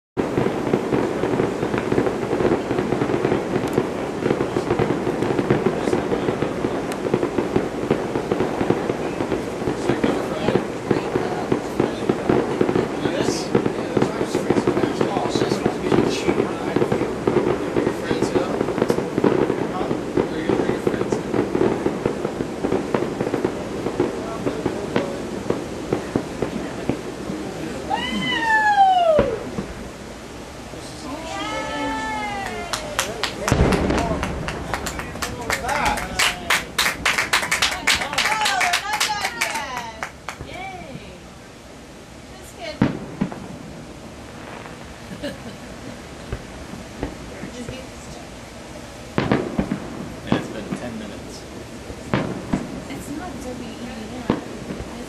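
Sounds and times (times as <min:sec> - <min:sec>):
fireworks bangs and crackling: 0:00.2 - 0:55.0
murmur of crowd voices: 0:00.2 - 0:55.0
loud falling whistle: 0:27.9 - 0:29.5.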